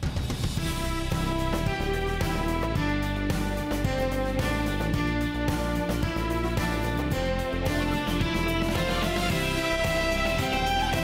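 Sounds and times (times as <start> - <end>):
instrumental theme music: 0.0 - 11.0.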